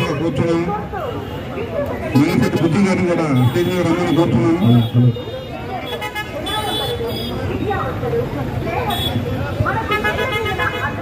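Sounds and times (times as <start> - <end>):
men talking: 2.0 - 5.2.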